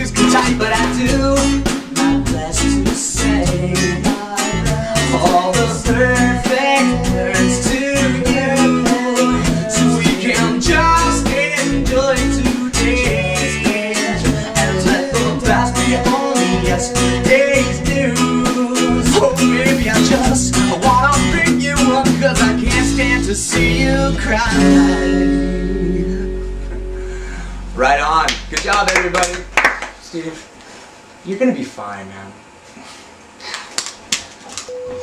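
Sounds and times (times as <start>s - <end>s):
steady drum beat: 0.0s - 23.9s
man singing: 0.0s - 26.9s
acoustic guitar strumming: 0.0s - 30.1s
electric bass: 0.0s - 30.2s.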